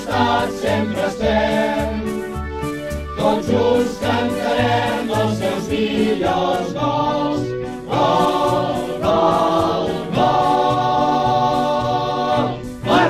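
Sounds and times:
choir singing anthem: 0.0s - 2.4s, 3.2s - 13.0s
instrumental backing: 0.0s - 13.0s.

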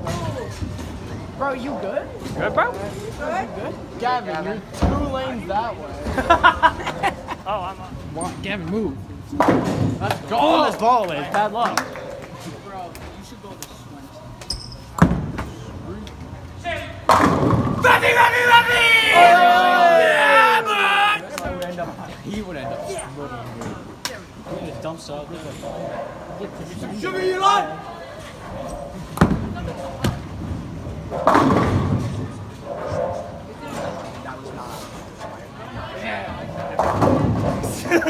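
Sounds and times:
bowling ball hitting pins: 17.1s - 17.8s, 31.0s - 33.0s, 36.6s - 37.7s
bowling ball thud: 17.1s - 17.8s, 29.2s - 33.1s
bowling pins crashing: 17.1s - 17.9s, 29.2s - 33.0s.

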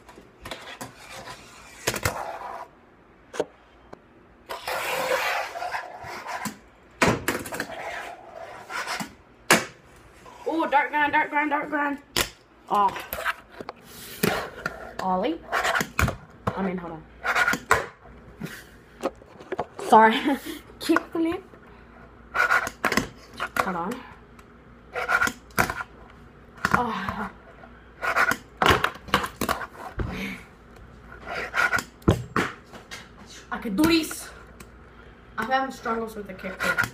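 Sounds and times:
fingerboard wheels rolling: 0.4s - 2.7s, 4.5s - 6.6s, 7.4s - 9.0s
person breathing: 30.0s - 30.5s, 34.8s - 35.4s.

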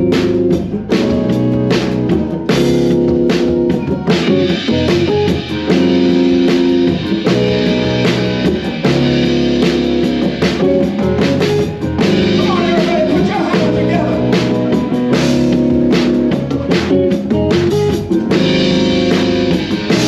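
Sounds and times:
drum kit with cymbals: 0.0s - 20.0s
guitar: 0.0s - 20.0s
keyboard chords: 0.0s - 20.0s.

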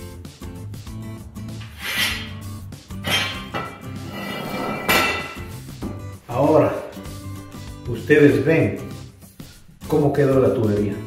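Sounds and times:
background music: 0.0s - 11.0s
metallic knocks and clinks: 3.0s - 3.9s.

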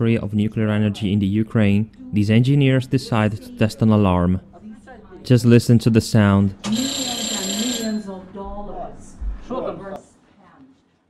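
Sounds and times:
alarm ringing: 6.6s - 8.3s.

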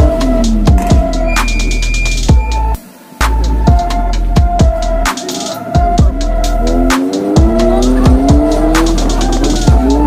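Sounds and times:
electronic music with heavy beat: 0.0s - 10.0s
vehicle engine revving: 6.0s - 10.0s.

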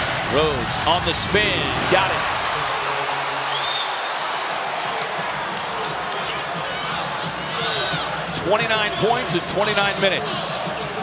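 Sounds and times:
arena crowd noise: 0.0s - 11.0s
sneakers squeaking on court: 3.9s - 8.4s.

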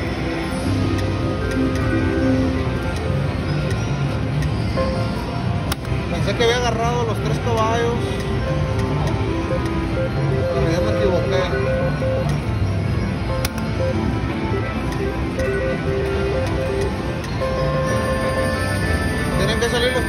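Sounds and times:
casino crowd hubbub: 0.0s - 20.0s
slot machine electronic music: 0.0s - 20.0s.

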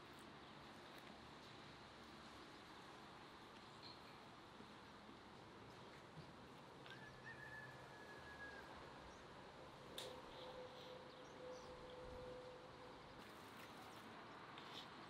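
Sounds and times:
faint outdoor ambience: 0.0s - 15.0s.

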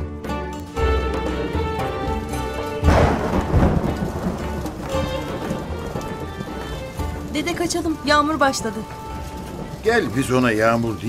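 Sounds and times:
music: 0.0s - 11.0s
steady rain: 0.8s - 11.0s
thunderclap: 2.3s - 11.0s.

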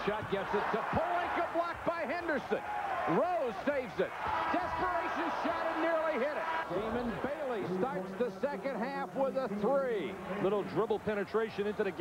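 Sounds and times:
arena crowd noise: 0.0s - 12.0s
men commentating: 0.0s - 12.0s.

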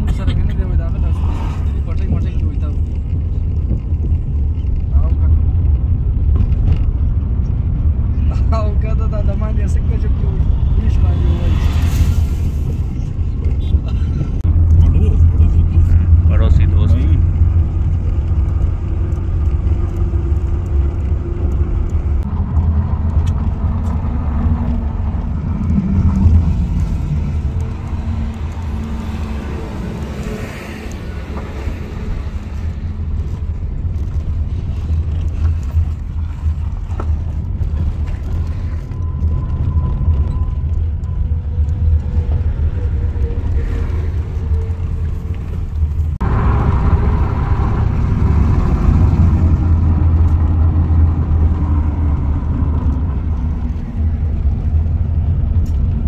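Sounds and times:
engine and road rumble: 0.0s - 56.0s.

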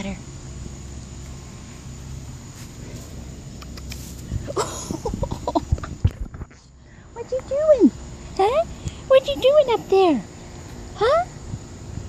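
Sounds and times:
low steady rumble: 0.0s - 12.0s
woman laughing: 4.4s - 6.1s.

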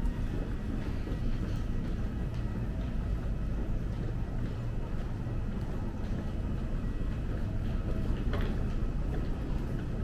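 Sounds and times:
low rumble of background noise: 0.0s - 10.0s.

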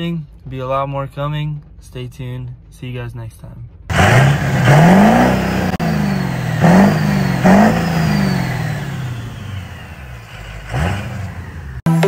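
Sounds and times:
diesel engine revving: 3.9s - 12.0s.

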